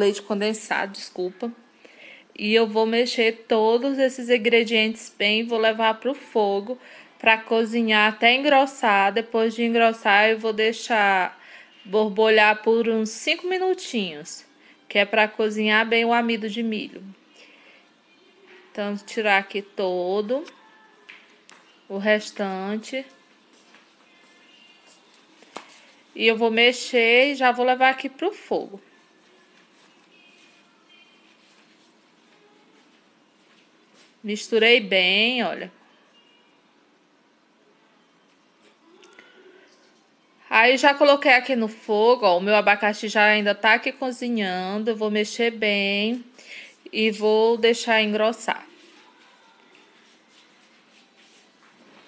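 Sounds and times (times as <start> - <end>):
faint background music: 0.0 - 52.0.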